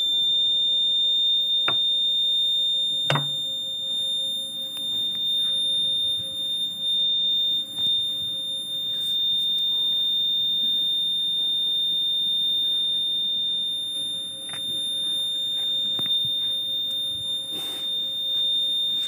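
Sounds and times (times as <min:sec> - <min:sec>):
high-pitched buzzer tone: 0:00.0 - 0:19.0.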